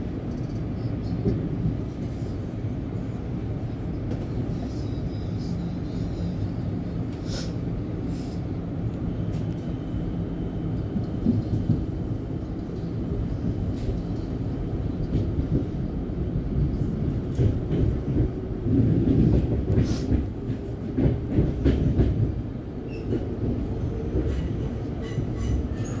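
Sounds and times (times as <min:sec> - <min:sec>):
train wheels rumbling on rail: 0:00.0 - 0:26.0.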